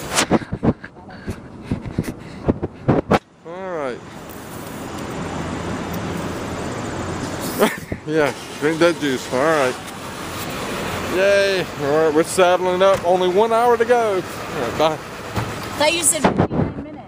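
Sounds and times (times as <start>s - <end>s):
road traffic rushing: 0.0s - 17.0s.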